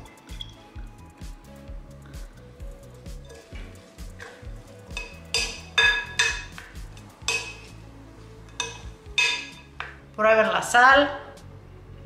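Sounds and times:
background music: 0.0s - 12.0s
wooden spoon clinking glass bowl: 4.2s - 6.6s, 7.3s - 7.7s, 8.5s - 9.7s.

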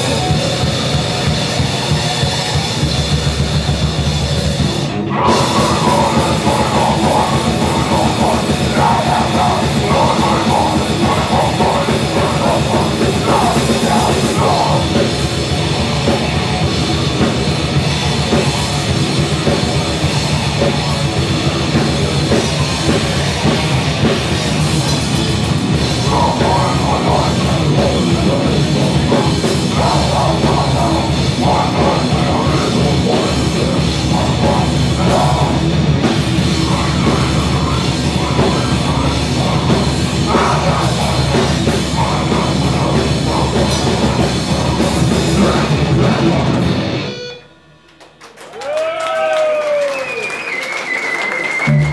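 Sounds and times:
drum kit pounding: 0.0s - 47.1s
distorted electric guitar: 0.0s - 48.4s, 51.6s - 51.9s.

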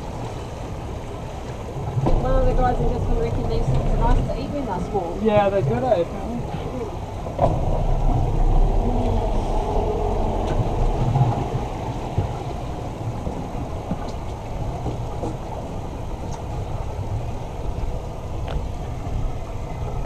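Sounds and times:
outboard motors rumbling: 0.0s - 20.0s.

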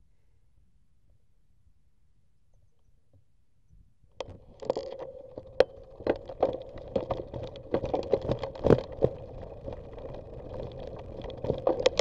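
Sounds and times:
bicycle rolling hum: 4.2s - 12.0s
bicycle tyres crackling on dirt: 4.2s - 12.0s.

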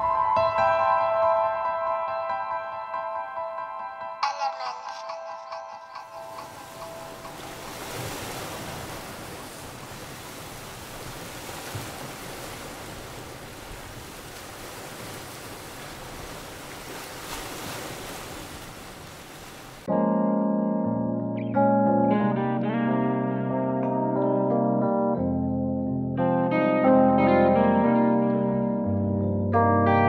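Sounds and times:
sea water rushing: 5.5s - 19.9s
wind: 5.9s - 19.9s.

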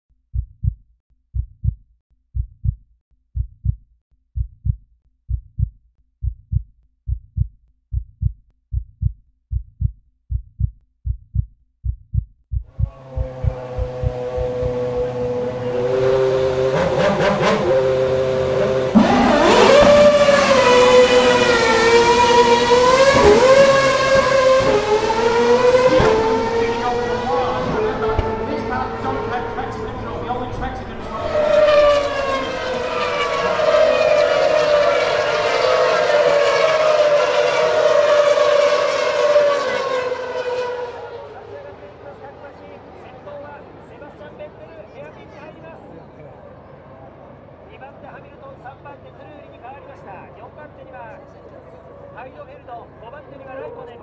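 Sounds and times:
heartbeat thumps: 0.3s - 15.1s
racing car engine revving: 12.8s - 41.5s.

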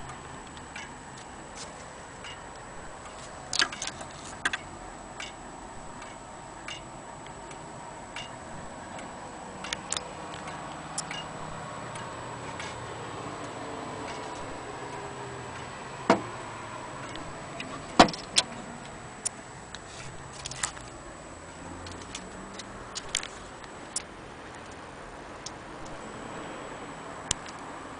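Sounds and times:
steady background hiss: 0.0s - 27.9s
clock ticking: 2.2s - 20.3s, 21.8s - 26.1s, 27.2s - 27.7s.

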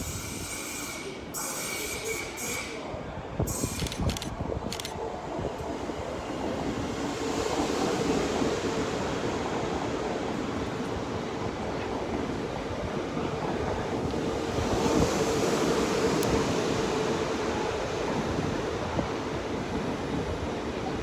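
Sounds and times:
train wheels rumbling on rail: 0.0s - 21.0s.

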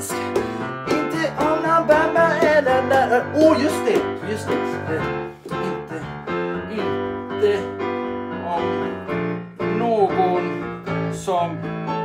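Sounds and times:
keyboard playing disco chords: 0.0s - 12.0s.

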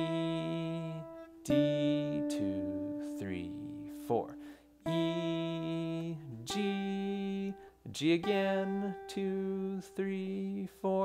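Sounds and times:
acoustic guitar melody: 0.0s - 11.0s
man speaking: 2.3s - 4.5s.

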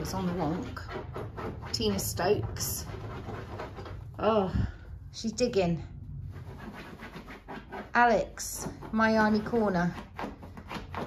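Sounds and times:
dog scratching a fabric cushion: 0.0s - 4.2s, 6.2s - 11.0s.

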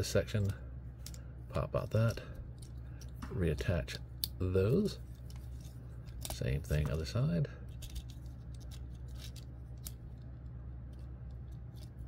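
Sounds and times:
plastic parts clicking and rubbing: 5.0s - 7.0s, 7.7s - 12.0s.

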